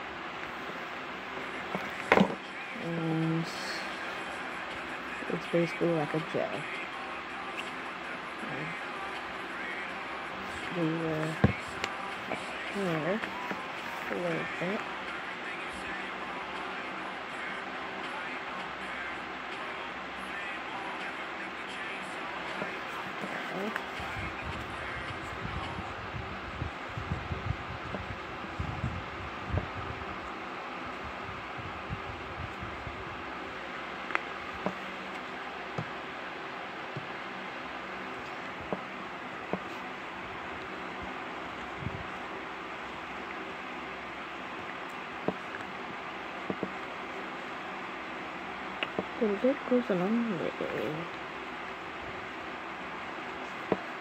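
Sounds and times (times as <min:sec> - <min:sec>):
background hiss and hum: 0:00.0 - 0:54.0.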